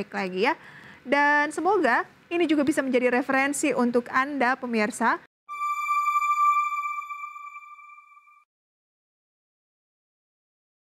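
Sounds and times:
electronic ringing tone: 0:05.5 - 0:08.4.

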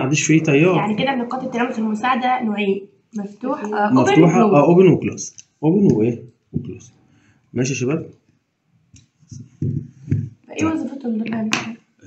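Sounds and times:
man's voice: 0:00.0 - 0:01.0, 0:03.9 - 0:06.9, 0:07.6 - 0:08.1.

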